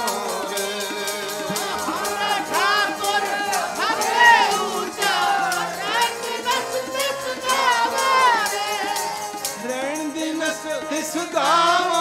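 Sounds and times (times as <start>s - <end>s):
congregation singing in unison: 0.0s - 12.0s
harmonium: 0.0s - 12.0s
tabla: 0.0s - 12.0s.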